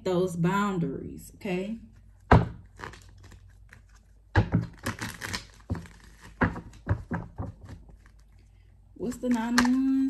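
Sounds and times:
cards being shuffled: 1.9 - 8.4, 9.2 - 10.0.

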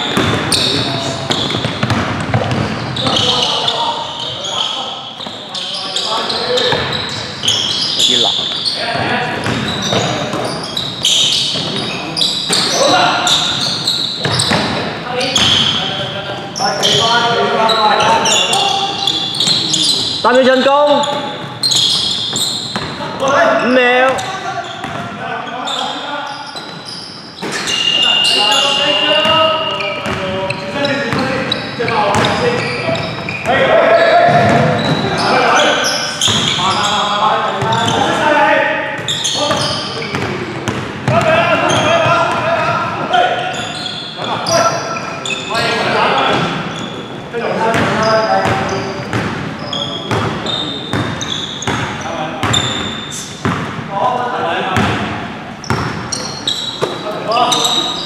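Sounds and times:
basketball bouncing on wooden court: 0.0 - 3.4, 6.6 - 7.6, 8.4 - 11.9, 21.0 - 23.3, 24.1 - 25.1, 30.0 - 30.3, 31.1 - 33.4, 39.0 - 42.4, 47.7 - 49.4, 50.1 - 53.8, 54.8 - 56.2
players shouting: 30.9 - 38.5.

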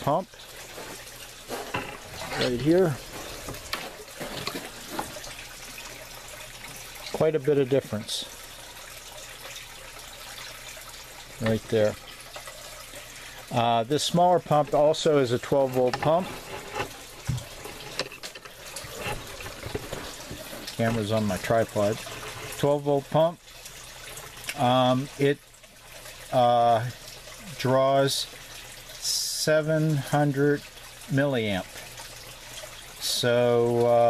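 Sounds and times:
running water rushing: 0.0 - 34.0.

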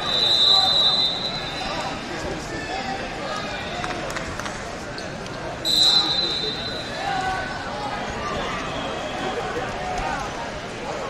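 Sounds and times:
referee's whistle: 0.0 - 2.0, 5.6 - 7.0
voices in gym hall: 0.0 - 11.0.

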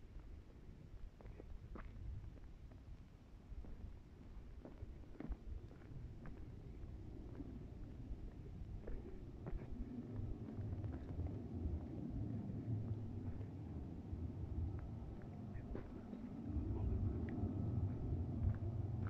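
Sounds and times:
wind buffeting microphone: 3.6 - 19.0.

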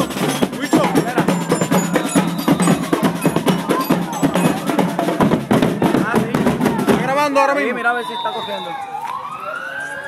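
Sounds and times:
faint voices: 0.0 - 10.0
siren wailing: 7.9 - 10.0.

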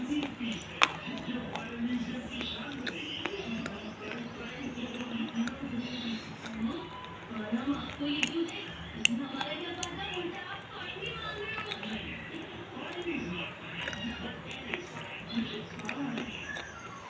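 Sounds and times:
voice sounds: 0.0 - 16.8
chewing and mouth sounds: 0.0 - 17.0
faint music: 0.0 - 17.0.

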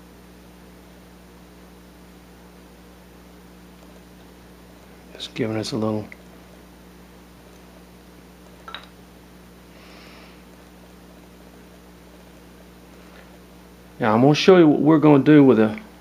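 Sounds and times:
low electrical hum: 0.0 - 16.0.

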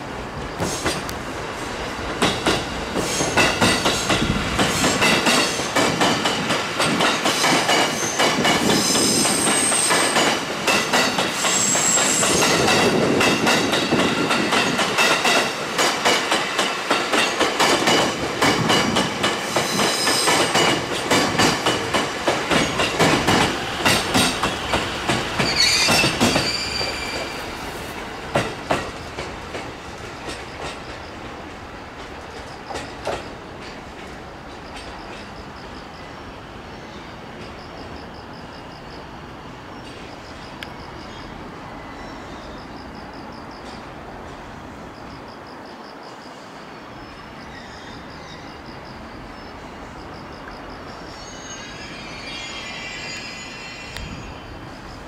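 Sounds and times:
train wheels clicking over rail joints: 0.4 - 35.5
high wheel squeals: 25.4 - 27.6, 51.0 - 54.6.

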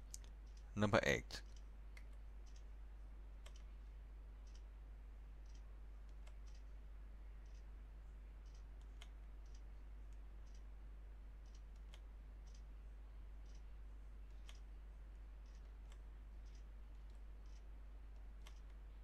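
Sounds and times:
faint clock ticking: 0.0 - 19.0
steady low hum: 0.0 - 19.0.

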